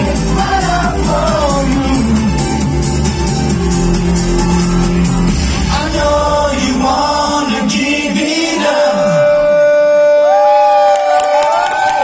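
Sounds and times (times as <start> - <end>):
audience cheering and whooping: 9.9 - 12.0
scattered clapping: 10.9 - 12.0.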